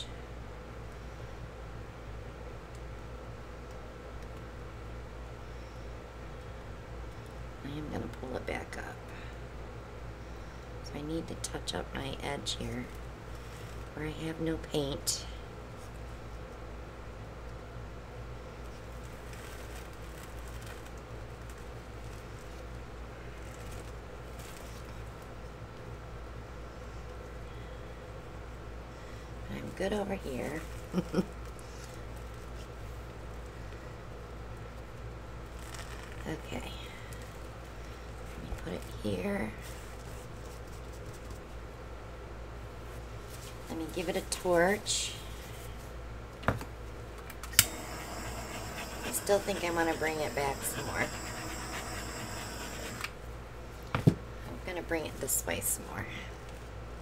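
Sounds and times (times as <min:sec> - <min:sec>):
low room hum: 0:00.0 - 0:57.0
rustling and handling noises: 0:12.4 - 0:14.2, 0:17.4 - 0:26.0, 0:29.6 - 0:57.0.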